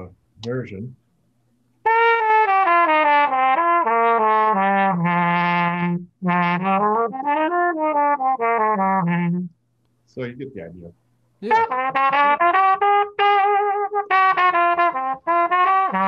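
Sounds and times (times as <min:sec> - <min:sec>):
muted trumpet playing: 0:01.8 - 0:09.6, 0:11.4 - 0:16.0.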